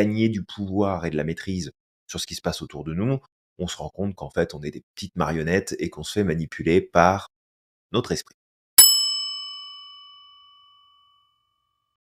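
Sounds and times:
bell ding: 8.8 - 11.5.

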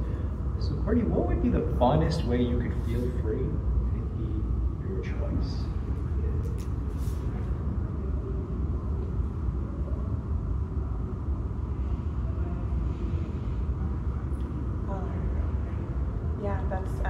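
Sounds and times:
low room rumble: 0.0 - 17.0.

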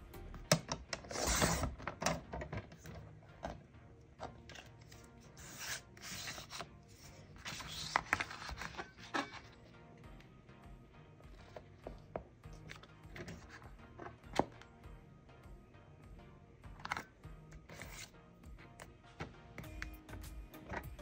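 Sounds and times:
paper rustling: 4.6 - 9.6.

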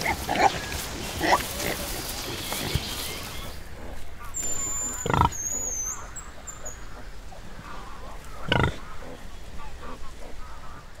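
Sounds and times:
pig grunting: 0.0 - 5.4, 8.4 - 10.4.

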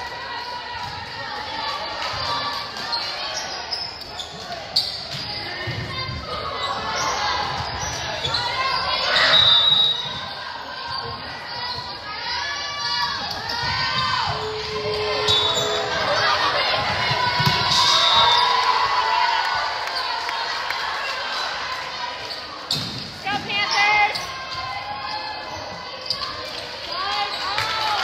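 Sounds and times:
people shouting in a hall: 0.0 - 3.7, 5.4 - 28.0.

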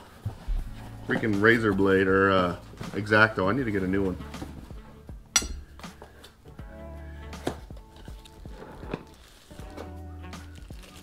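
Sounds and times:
soft background music: 0.0 - 11.0
packaging unwrapping clicks and rustling: 8.0 - 11.0.

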